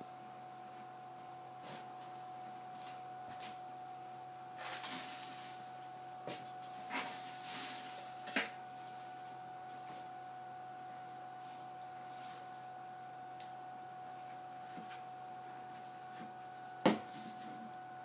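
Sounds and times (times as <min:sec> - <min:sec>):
faint steady tone: 0:00.0 - 0:18.0
hand brush sweeping and scraping: 0:06.6 - 0:08.2.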